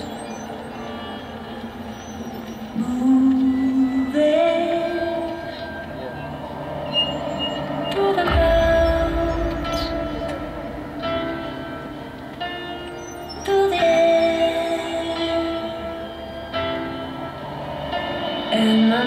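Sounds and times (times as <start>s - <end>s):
deep low drum hit: 8.3s - 12.2s
marching band brass chords: 8.3s - 12.9s.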